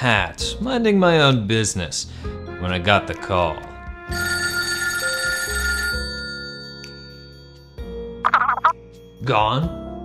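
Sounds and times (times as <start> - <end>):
telephone ringing: 4.1 - 7.2, 8.3 - 8.7.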